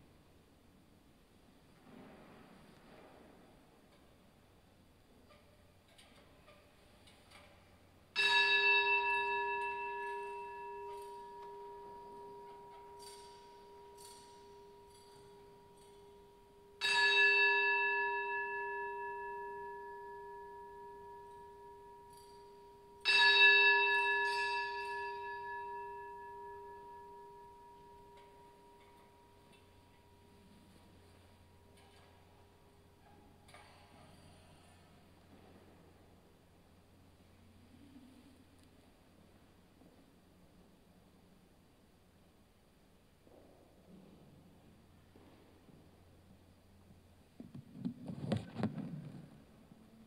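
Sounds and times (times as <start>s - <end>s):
church bell ringing: 8.1s - 32.6s.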